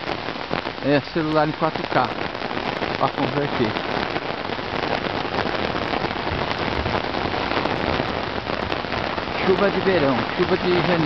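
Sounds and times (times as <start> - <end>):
heavy rain on umbrella: 0.0 - 11.0.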